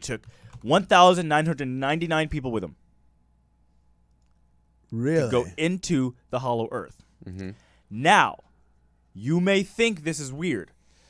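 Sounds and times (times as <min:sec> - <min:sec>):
person speaking: 0:04.9 - 0:08.4.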